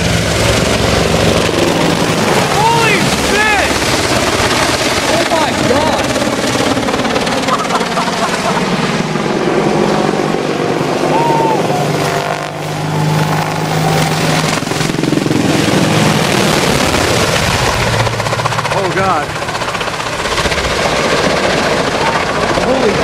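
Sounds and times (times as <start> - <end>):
helicopter flying overhead: 0.0 - 23.0.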